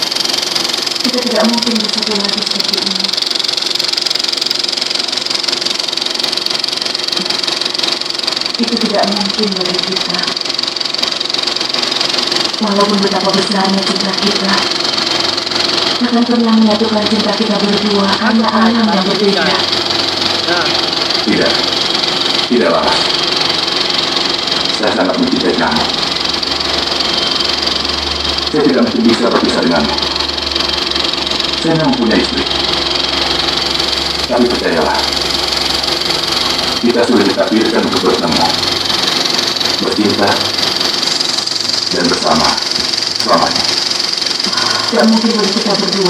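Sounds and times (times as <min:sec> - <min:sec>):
film projector clattering: 0:00.0 - 0:46.0.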